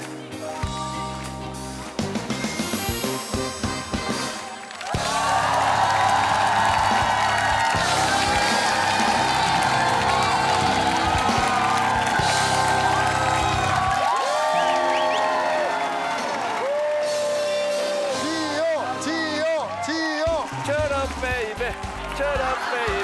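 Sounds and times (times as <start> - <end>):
loud music: 0.0 - 23.0
audience cheering and applauding: 1.8 - 23.0
rising whoops: 4.8 - 18.5.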